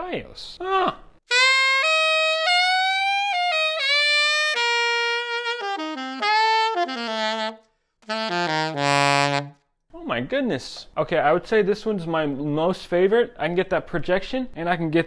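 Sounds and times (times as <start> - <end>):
alto saxophone playing: 1.3 - 9.6.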